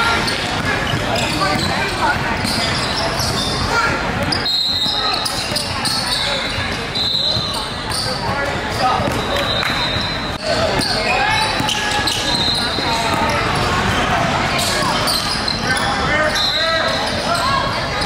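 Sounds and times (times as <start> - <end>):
sneaker squeaks: 0.0 - 18.0.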